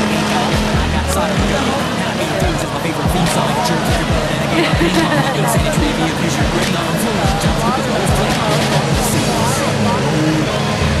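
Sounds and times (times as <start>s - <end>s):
lawn mower engines running: 0.0s - 11.0s
voices: 0.0s - 11.0s.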